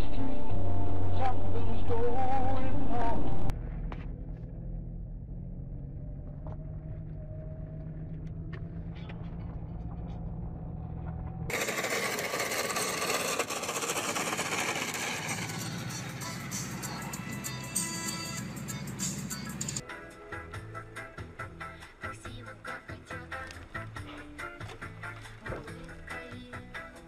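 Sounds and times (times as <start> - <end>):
car engine and road noise: 0.0 - 27.0.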